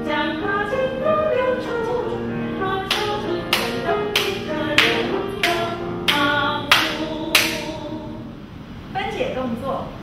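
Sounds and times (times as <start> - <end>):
sharp handclaps: 2.9 - 7.6.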